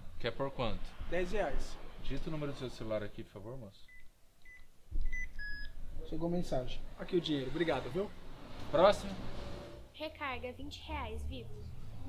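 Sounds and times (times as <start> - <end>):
keypad beeps: 3.9 - 5.7.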